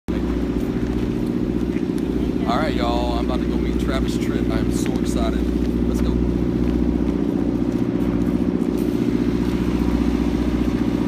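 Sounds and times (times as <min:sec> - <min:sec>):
bus engine idling: 0:00.1 - 0:11.0.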